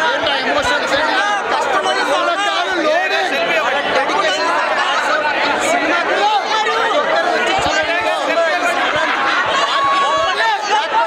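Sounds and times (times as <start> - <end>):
crowd chatter: 0.0 - 11.0
man speaking into microphones: 0.0 - 11.0.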